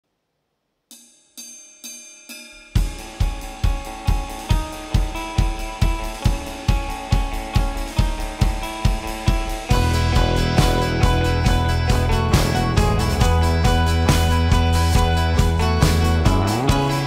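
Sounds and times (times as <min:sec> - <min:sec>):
ringing struck hits: 0:00.9 - 0:04.8
drum kit with kick and cymbals: 0:00.9 - 0:17.0
sustained guitar notes: 0:02.8 - 0:17.0.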